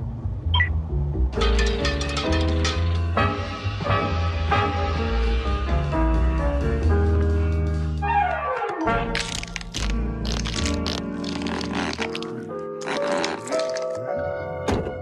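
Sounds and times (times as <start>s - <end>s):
cartoon background music: 0.5s - 15.0s.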